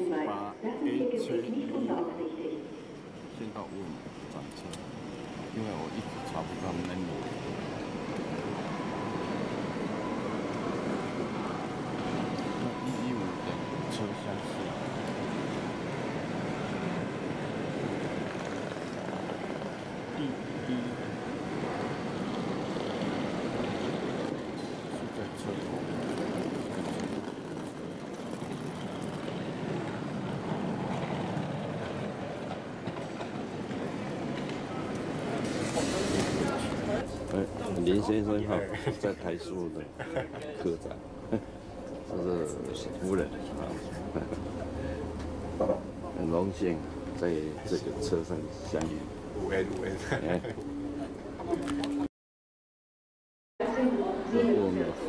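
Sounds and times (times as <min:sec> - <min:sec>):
reverberant indistinct voices: 0:00.0 - 0:08.0.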